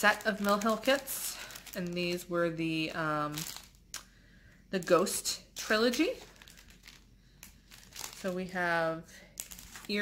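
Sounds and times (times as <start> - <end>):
plastic packaging crinkling: 0.0 - 4.1, 4.8 - 10.0.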